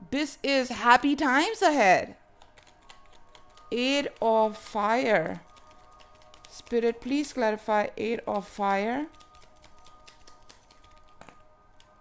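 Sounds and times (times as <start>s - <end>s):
faint background music: 0.0s - 12.0s
cards being shuffled: 2.4s - 3.7s, 9.1s - 11.4s.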